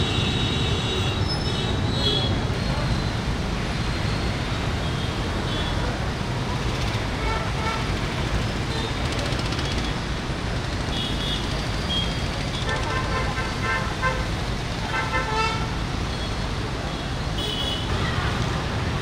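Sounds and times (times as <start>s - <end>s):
idling traffic rumble: 0.0s - 19.0s
vehicle horns honking: 10.9s - 14.3s, 14.9s - 15.8s, 17.4s - 18.0s.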